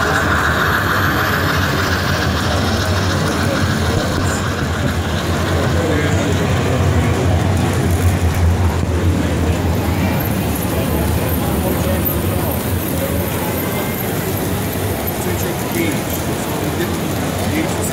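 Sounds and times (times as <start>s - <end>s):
exhibition hall din: 0.0s - 17.9s
model trains running: 0.0s - 17.9s.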